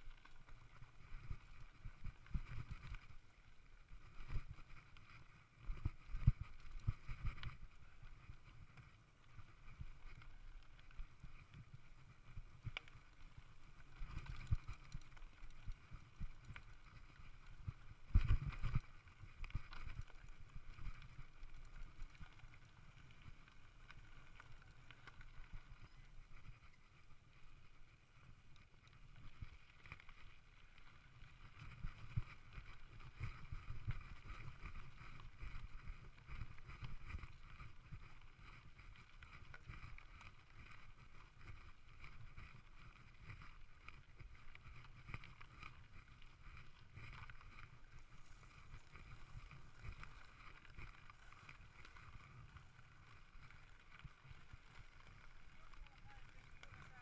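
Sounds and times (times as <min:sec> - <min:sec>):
bike tyres rumbling over dirt: 0:00.1 - 0:57.0.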